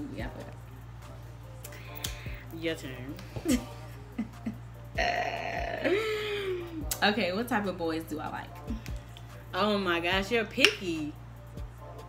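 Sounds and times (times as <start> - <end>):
person humming wordless tone: 3.2 - 7.0.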